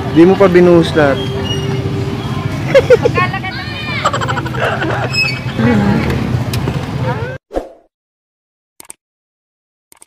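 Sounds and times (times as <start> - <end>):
people's voices: 0.2 - 7.4.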